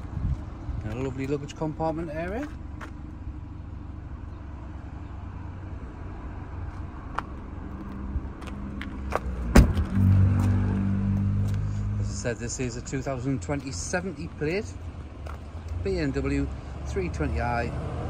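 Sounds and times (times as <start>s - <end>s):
car boot lid thud: 9.5s - 9.9s.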